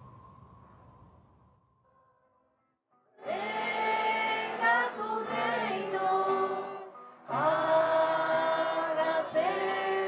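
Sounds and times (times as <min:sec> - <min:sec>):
group of voices singing in chorus: 0:03.2 - 0:10.0.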